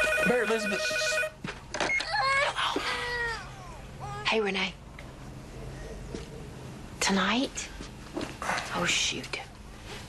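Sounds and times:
electronic telephone ringing: 0:00.0 - 0:02.1
high-pitched wailing cries: 0:01.9 - 0:04.3.

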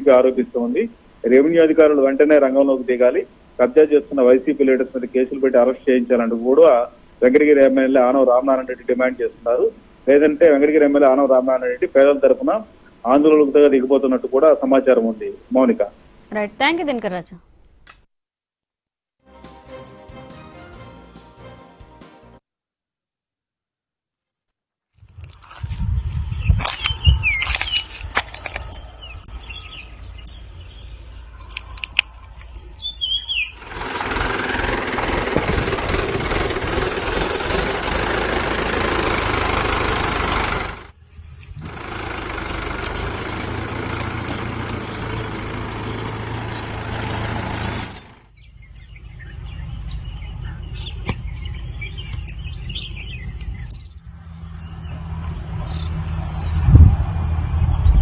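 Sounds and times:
birds chirping: 0:25.8 - 0:33.8, 0:41.0 - 0:47.6, 0:48.3 - 0:58.0
low rumble: 0:53.5 - 0:58.0.

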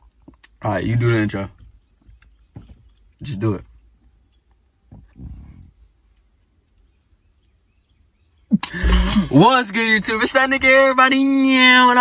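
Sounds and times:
person stifling a laugh: 0:08.6 - 0:09.4.

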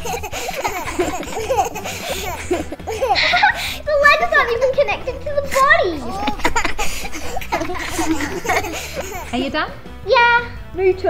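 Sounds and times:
people laughing: 0:00.0 - 0:09.5.

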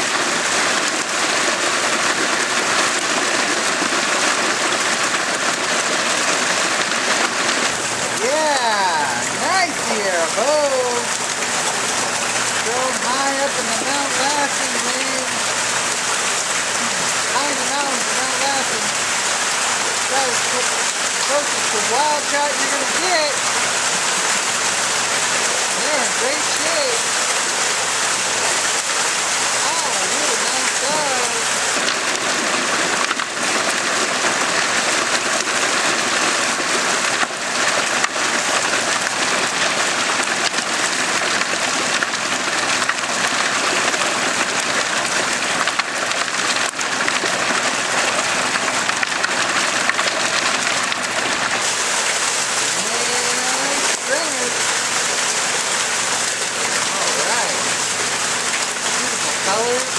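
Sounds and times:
water rushing and splashing: 0:00.0 - 0:59.9.

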